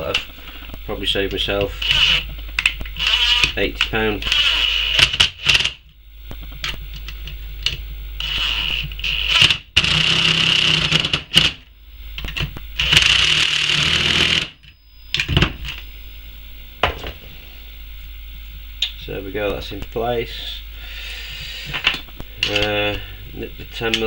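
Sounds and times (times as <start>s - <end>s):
cordless drill running: 3.0s - 3.6s, 4.2s - 5.7s, 8.2s - 11.4s, 12.8s - 14.5s.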